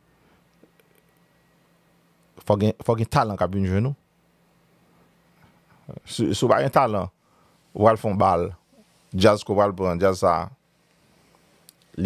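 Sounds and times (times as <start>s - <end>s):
man speaking: 2.4s - 4.0s, 5.9s - 7.1s, 7.8s - 10.6s.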